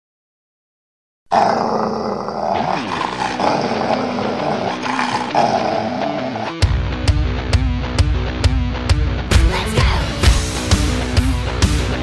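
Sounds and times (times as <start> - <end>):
animal growling: 1.3 - 6.6.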